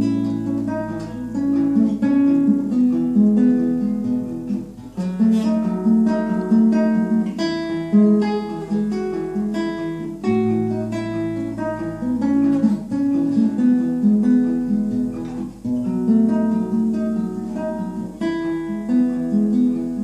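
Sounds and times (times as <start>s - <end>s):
fingerstyle classical guitar: 0.0s - 20.0s.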